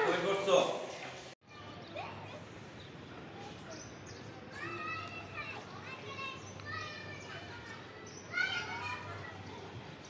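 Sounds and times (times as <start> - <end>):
outdoor neighbourhood ambience: 0.0 - 10.0
distant children calling out: 1.4 - 10.0.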